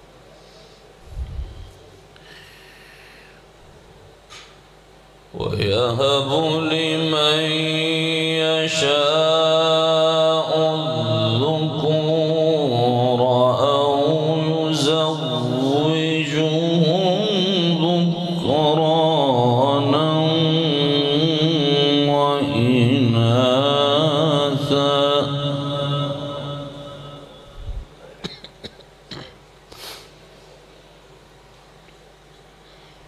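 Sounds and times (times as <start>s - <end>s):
man reciting melodically: 5.3s - 28.2s.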